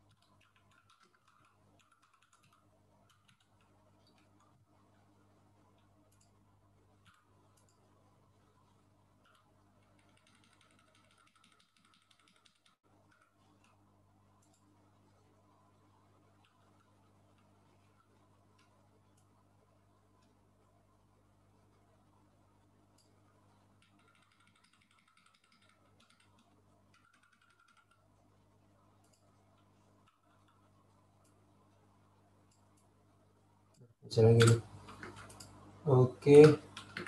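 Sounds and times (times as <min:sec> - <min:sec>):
low electrical hum: 0:00.0 - 0:37.0
keyboard typing clicks: 0:00.1 - 0:04.5, 0:09.2 - 0:13.8, 0:23.8 - 0:28.1, 0:34.3 - 0:35.6, 0:36.3 - 0:37.0.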